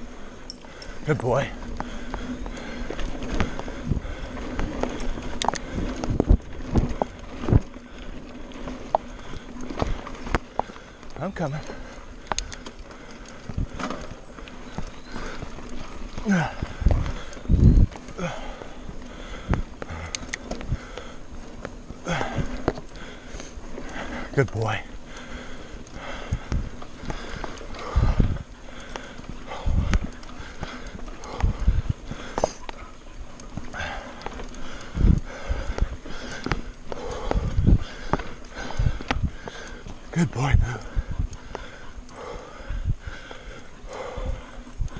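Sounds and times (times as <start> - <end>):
bike tyres rolling on dirt: 0.0 - 44.9
rider breathing hard: 0.0 - 44.9.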